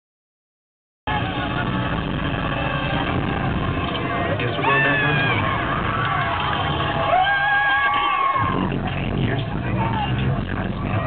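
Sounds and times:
mechanical rumble over speakers: 0:08.4 - 0:11.0.

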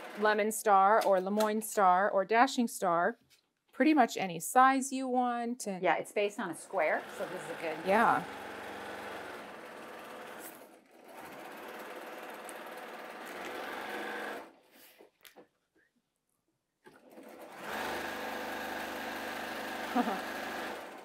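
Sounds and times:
electric sewing machine stitching: 0:00.0 - 0:00.6, 0:06.6 - 0:14.6, 0:16.9 - 0:21.0.

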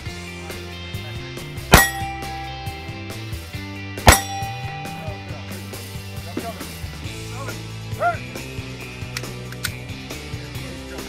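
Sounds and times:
handgun shot: 0:01.7 - 0:02.4, 0:04.1 - 0:05.1.

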